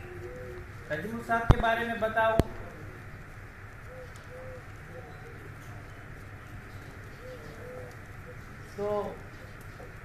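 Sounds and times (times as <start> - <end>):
dove cooing: 0.0 - 1.3, 2.5 - 10.0
outdoor background noise: 0.0 - 10.0.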